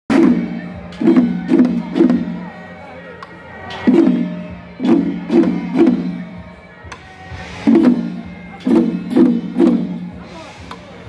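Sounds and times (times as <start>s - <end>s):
procession drums beating: 0.1s - 10.8s.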